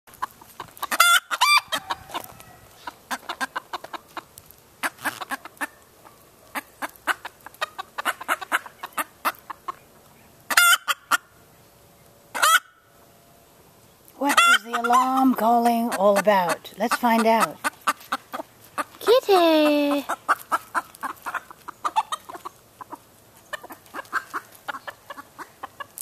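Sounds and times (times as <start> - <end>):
hen clucking: 0.1 - 9.9, 10.5 - 11.3, 12.3 - 12.8, 14.2 - 26.0
hen squawking: 0.8 - 4.0, 14.2 - 25.9.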